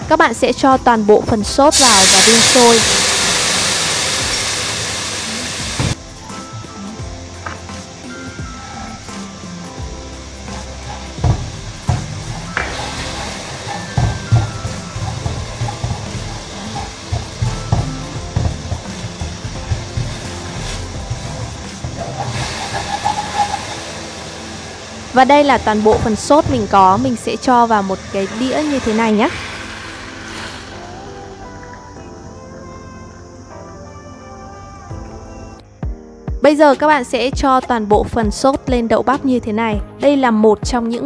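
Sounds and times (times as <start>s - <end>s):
background music: 0.0s - 41.0s
sauce sizzling in a wok: 1.7s - 32.0s
spatula scraping wok: 10.2s - 31.6s.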